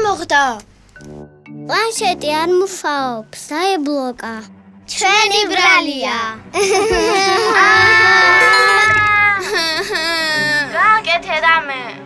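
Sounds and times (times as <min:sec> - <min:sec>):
cartoon baby crying: 0:07.3 - 0:10.6.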